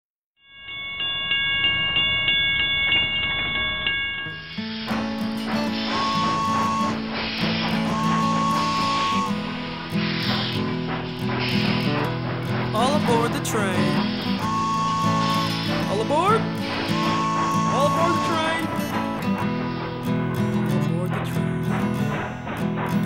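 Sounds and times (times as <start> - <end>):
train chugging: 1.0 - 23.0
train whistle: 4.5 - 23.0.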